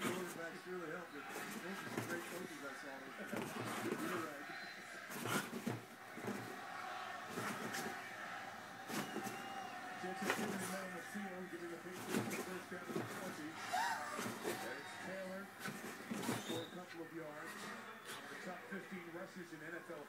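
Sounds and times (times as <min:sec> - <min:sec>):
television sports commentary: 0:00.0 - 0:20.0.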